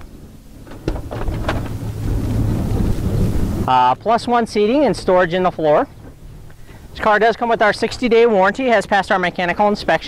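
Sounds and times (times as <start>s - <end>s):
sliding door motor hum: 0.0s - 3.7s.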